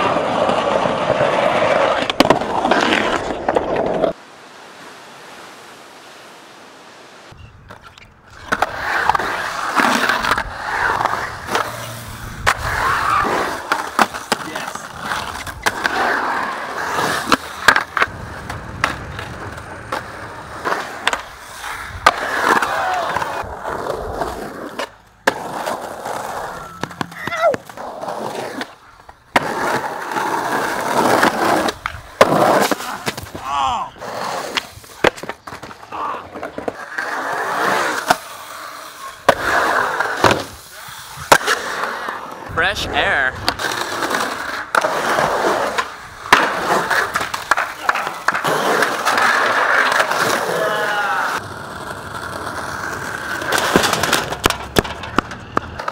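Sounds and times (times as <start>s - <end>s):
skateboard wheels rolling on concrete: 0.0s - 55.9s
skateboard clacking: 7.7s - 33.4s, 34.1s - 55.9s.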